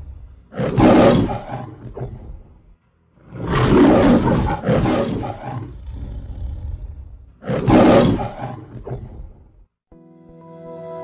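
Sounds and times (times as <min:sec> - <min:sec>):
lion roaring: 0:00.0 - 0:09.6.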